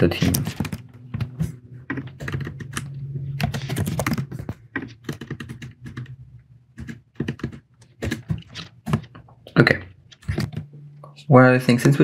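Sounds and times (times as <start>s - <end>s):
typing on computer keyboard: 1.9s - 9.2s.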